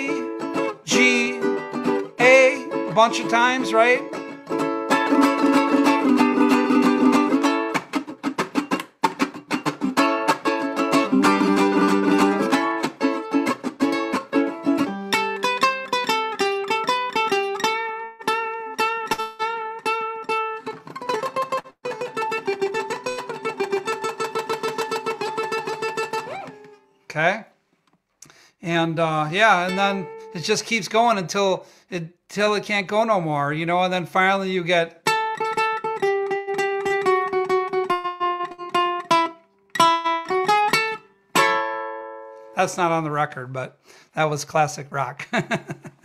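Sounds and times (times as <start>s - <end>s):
ukulele playing surf-rock: 0.0s - 26.8s, 29.3s - 30.6s, 35.0s - 42.5s.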